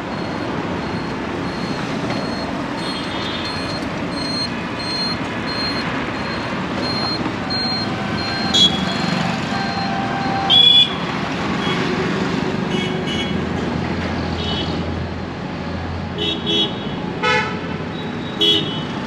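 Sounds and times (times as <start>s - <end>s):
motorcycles and cars passing: 0.0s - 19.0s
vehicle horns honking: 8.4s - 12.0s, 12.7s - 13.4s, 16.2s - 19.0s.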